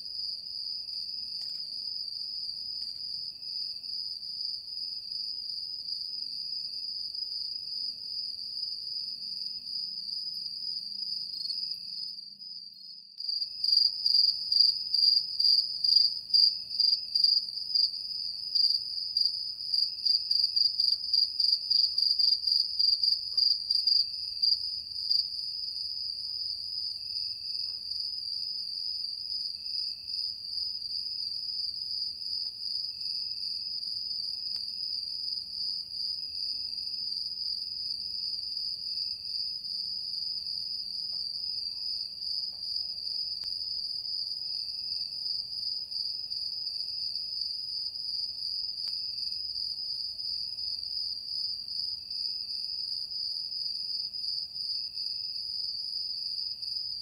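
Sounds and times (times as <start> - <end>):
rapidly pulsing insect chirp: 0.0 - 57.0.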